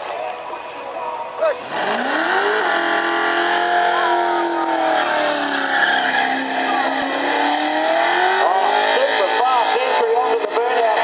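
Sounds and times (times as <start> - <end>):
car engine revving high: 1.6 - 11.0
tyres squealing: 3.6 - 9.9.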